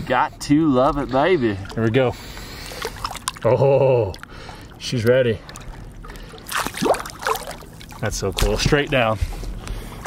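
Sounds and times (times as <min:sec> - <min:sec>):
water splashing and gurgling: 0:00.8 - 0:10.0.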